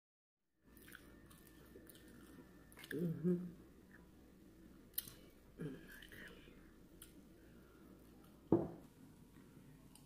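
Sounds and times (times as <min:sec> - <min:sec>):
quiet eating sounds: 0:00.6 - 0:10.0
low hum-like mouth sound: 0:00.9 - 0:04.1, 0:04.9 - 0:07.1.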